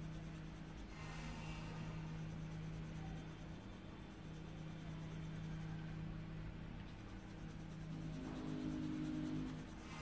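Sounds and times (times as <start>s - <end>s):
pen scratching on paper: 0.0s - 5.9s, 6.8s - 10.0s
low hum: 0.0s - 10.0s.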